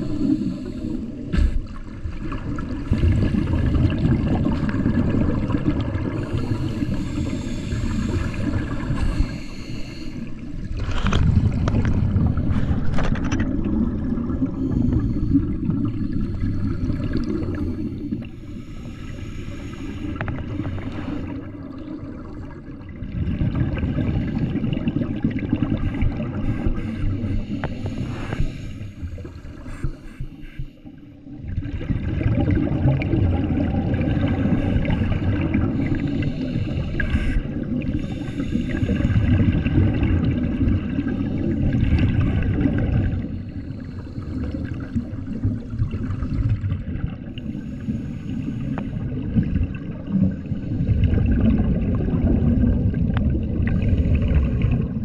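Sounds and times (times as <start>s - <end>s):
scuba regulator bubbling exhaust: 0.0s - 55.0s.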